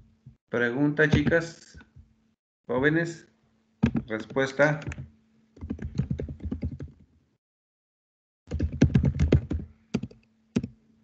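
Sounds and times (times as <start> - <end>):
typing on computer keyboard: 5.6 - 7.0, 8.5 - 10.8.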